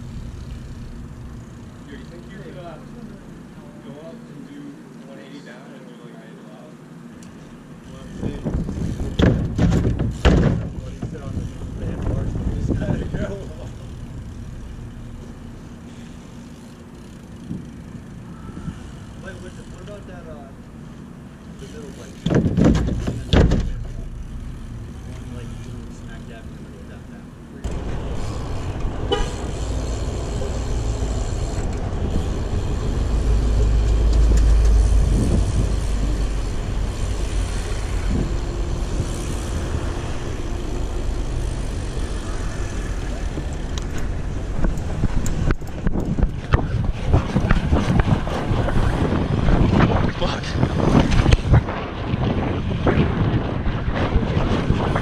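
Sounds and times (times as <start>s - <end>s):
car traffic: 0.0s - 5.1s, 6.8s - 55.0s
wind rumbling on microphone: 8.0s - 15.0s, 27.6s - 55.0s
bike knocks and rattles: 8.2s - 15.4s, 16.6s - 18.2s, 21.7s - 25.9s, 43.2s - 55.0s.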